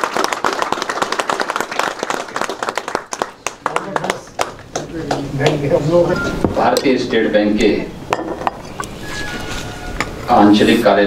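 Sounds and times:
audience applause: 0.0 - 5.7.

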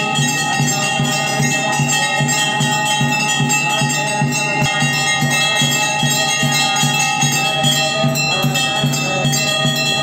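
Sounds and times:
bells ringing: 0.0 - 10.0
steady drum beat: 0.0 - 10.0.

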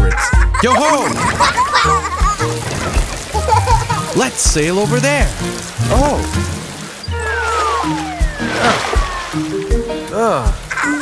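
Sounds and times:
background music with held notes: 0.0 - 11.0
descending cartoon whistle: 7.0 - 9.6.

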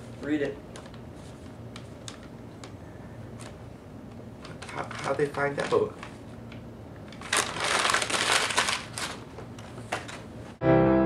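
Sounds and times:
paper being crumpled: 4.4 - 6.3, 7.1 - 10.2.

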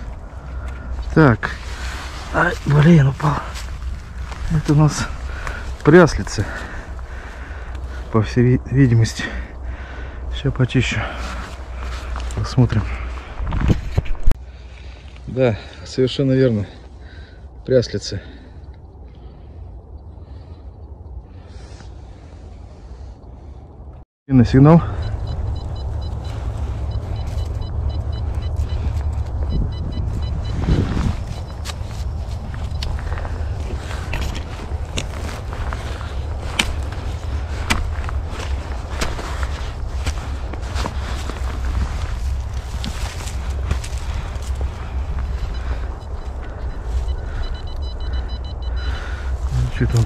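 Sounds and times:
low rumble: 0.0 - 8.8, 24.8 - 50.0
twigs and leaves crackling: 0.0 - 17.4, 25.0 - 50.0
metal detector beeps: 24.6 - 37.8, 42.8 - 50.0.

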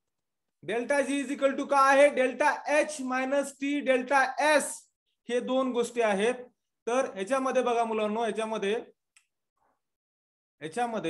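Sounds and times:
man speaking: 0.6 - 9.0, 10.6 - 11.0.

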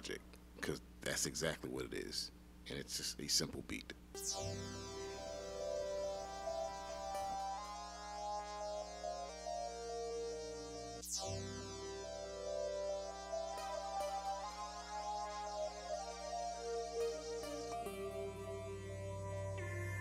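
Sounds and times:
bright falling synth sweep: 4.2 - 20.0
sustained synth chords: 4.2 - 20.0
synth beat: 4.2 - 20.0.

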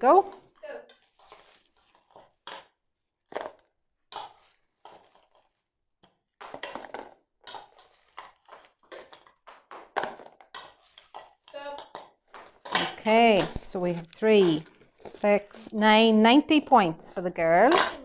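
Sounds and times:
small items rattling into bowl: 6.4 - 15.7.

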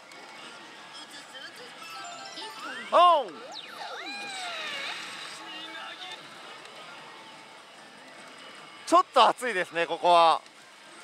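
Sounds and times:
slot parlour din: 1.6 - 6.0
slot machine music and jingles: 1.8 - 5.0.

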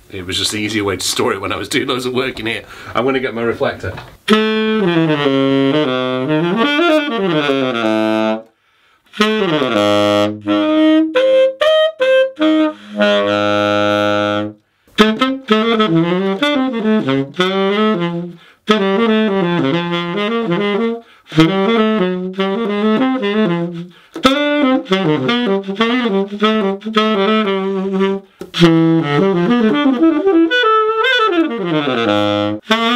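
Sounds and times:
tenor saxophone jazz phrases: 0.0 - 32.9
player taking short breaths: 2.6 - 3.0, 8.5 - 9.1, 18.4 - 18.6, 21.0 - 21.3, 23.9 - 24.2.

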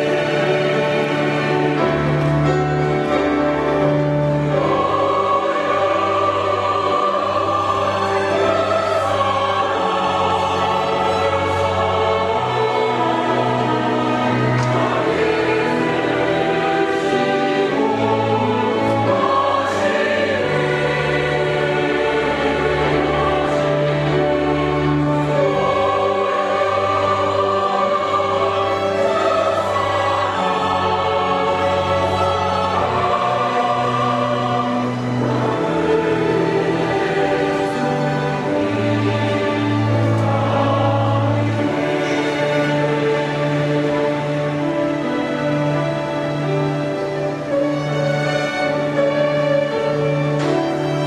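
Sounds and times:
chamber orchestra: 0.0 - 51.0
choir singing in harmony: 0.0 - 51.0.

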